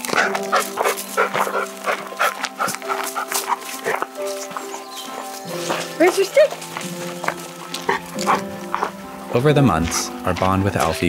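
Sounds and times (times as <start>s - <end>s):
dog barking: 0.0s - 5.3s, 7.2s - 9.0s
background music with held notes: 0.0s - 11.0s.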